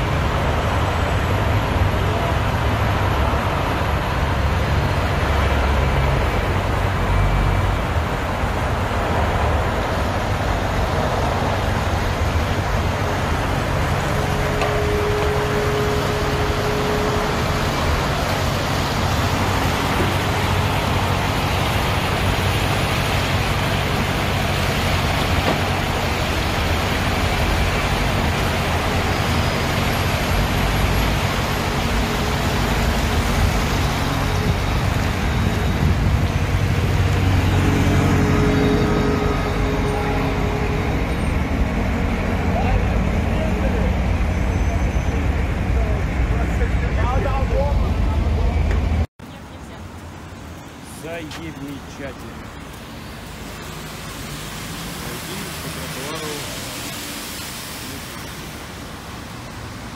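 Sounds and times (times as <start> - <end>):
road traffic roar: 0.0 - 59.9.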